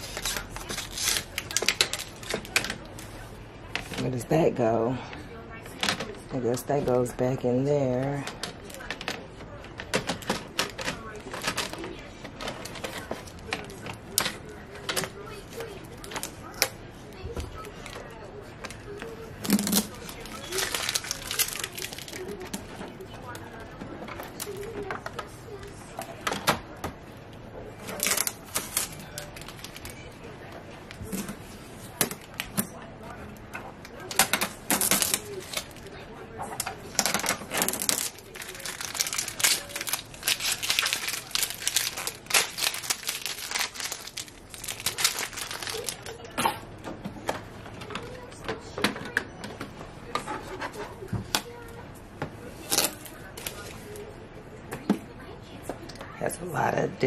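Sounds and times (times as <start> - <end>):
tape ripping and crinkling: 0.0 - 2.7, 19.4 - 22.6, 27.8 - 29.9, 34.1 - 35.9, 36.6 - 46.2, 52.6 - 53.7.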